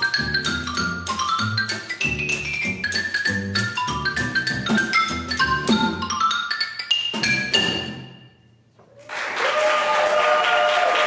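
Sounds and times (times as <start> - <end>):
plucked upright bass: 0.0 - 6.4
xylophone melody with hard mallets: 0.0 - 8.6.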